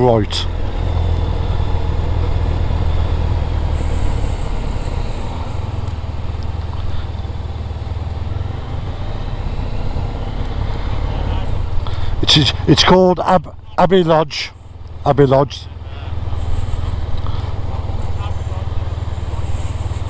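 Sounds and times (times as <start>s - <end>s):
motorcycle engine running: 0.0s - 20.0s
road and wind noise: 0.0s - 20.0s.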